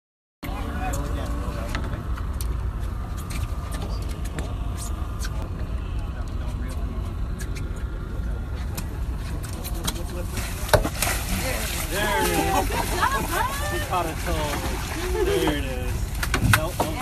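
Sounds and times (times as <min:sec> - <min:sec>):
boat engine low rumble: 0:00.4 - 0:17.0
people's voices: 0:00.4 - 0:17.0.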